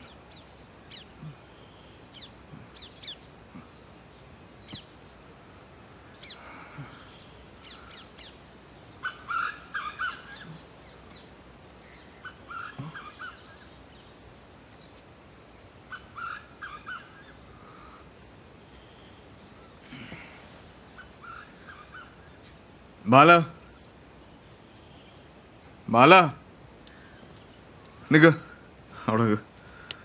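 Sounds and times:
small birds chirping: 0:00.0 - 0:30.0
steady background hiss: 0:00.0 - 0:30.0
crows cawing: 0:09.0 - 0:10.6, 0:12.2 - 0:13.6, 0:15.8 - 0:18.3, 0:21.0 - 0:22.2.

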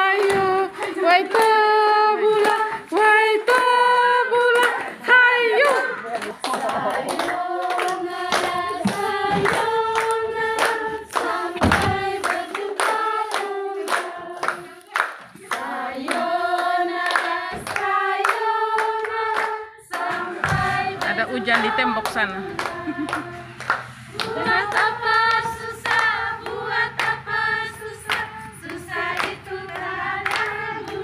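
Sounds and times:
hands clapping to a beat: 0:00.0 - 0:31.0
women singing together: 0:00.0 - 0:31.0.

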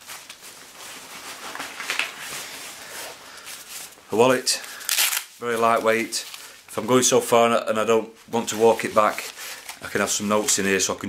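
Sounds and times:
fabric rucksack rustling: 0:00.0 - 0:06.6, 0:08.2 - 0:10.9.

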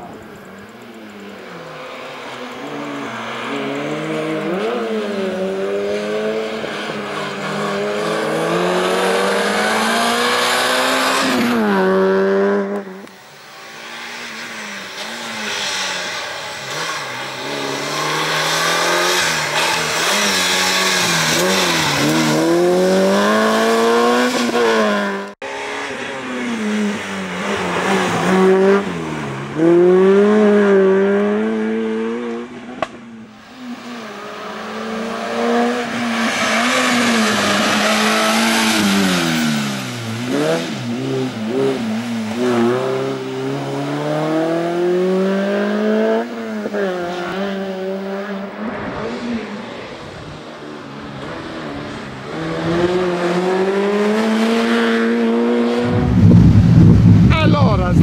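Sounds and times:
race car engine revving: 0:01.1 - 0:58.0.

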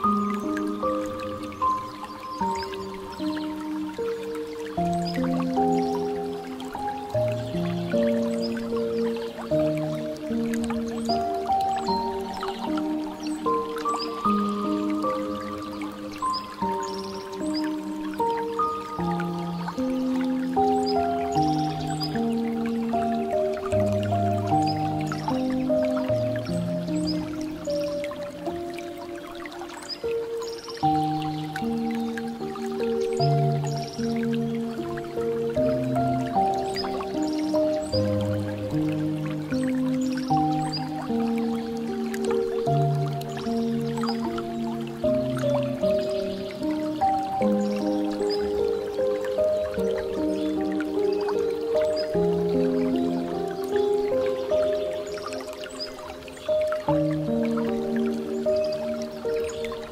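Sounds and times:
calm piano music: 0:00.0 - 0:59.9
water dripping and trickling: 0:00.0 - 0:59.9.

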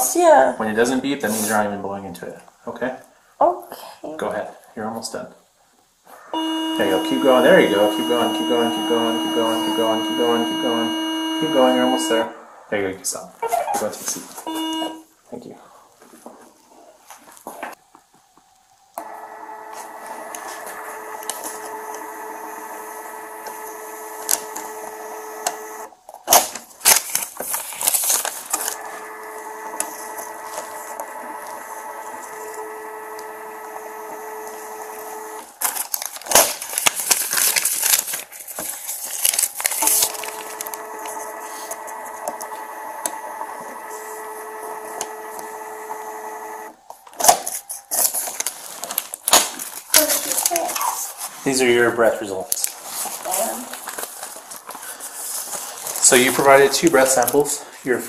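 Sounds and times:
steady machine hum: 0:06.4 - 0:12.4, 0:14.4 - 0:15.1, 0:19.0 - 0:26.0, 0:28.7 - 0:35.6
clatter and handling noise: 0:26.0 - 0:28.8, 0:35.6 - 0:42.4, 0:46.9 - 0:51.4, 0:52.5 - 0:56.0.

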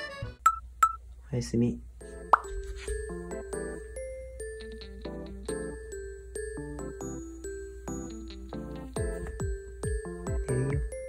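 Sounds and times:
background music of held notes: 0:00.0 - 0:00.5, 0:02.0 - 0:11.0.

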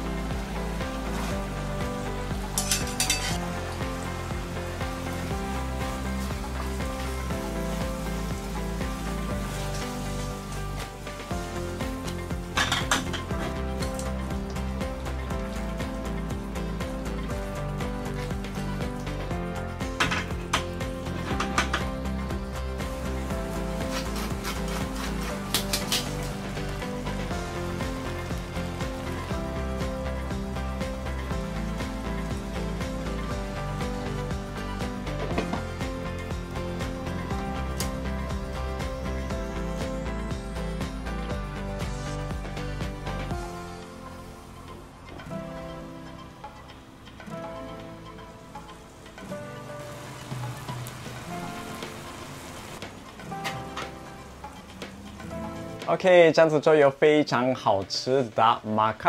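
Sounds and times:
sauce sizzling in a pan: 0:00.0 - 0:19.8, 0:20.4 - 0:44.8
background music: 0:00.0 - 0:59.0
ladle clinking against pan: 0:02.6 - 0:03.4.

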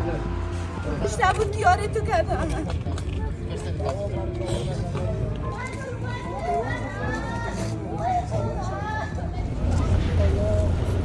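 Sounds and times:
people speaking and calling out: 0:00.0 - 0:10.8.

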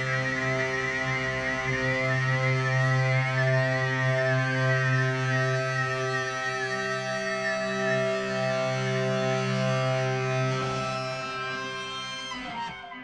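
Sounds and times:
droning electric guitar: 0:00.0 - 0:13.0
wavering high guitar line: 0:00.0 - 0:13.0.

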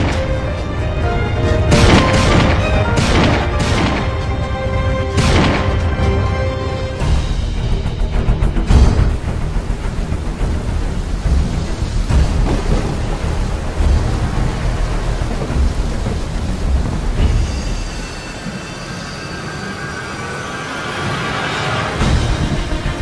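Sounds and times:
rain-like hiss: 0:00.0 - 0:23.0.

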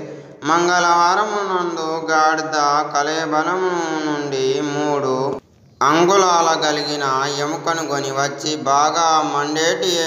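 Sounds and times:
person chanting: 0:00.0 - 0:10.0.

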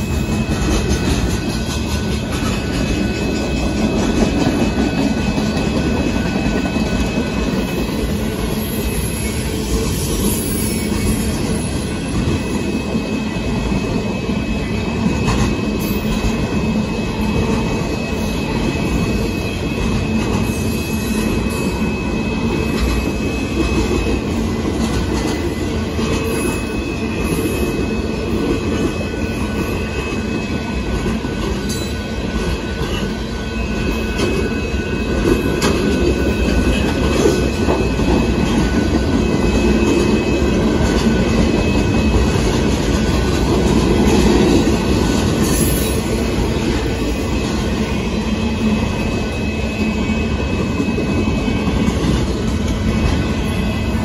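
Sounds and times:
high wheel squeal: 0:00.0 - 0:54.0
train wheels rumbling and clattering: 0:00.0 - 0:54.0.

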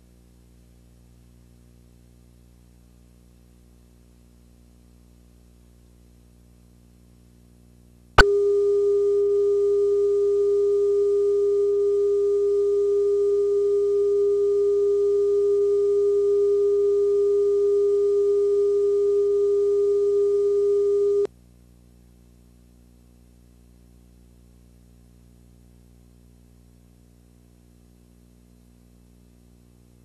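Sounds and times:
steady test tone beep: 0:08.2 - 0:21.3.

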